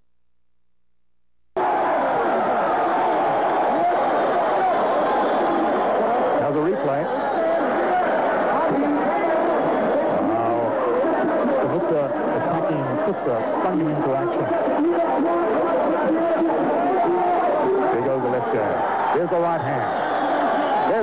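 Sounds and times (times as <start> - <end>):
crowd chatter: 1.6 - 21.0
people talking: 6.1 - 7.1, 8.6 - 19.9.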